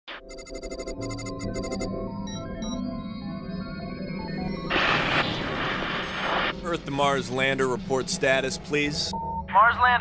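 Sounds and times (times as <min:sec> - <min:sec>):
rapid electronic beeping: 0:00.1 - 0:09.6
low synth drone: 0:01.4 - 0:09.5.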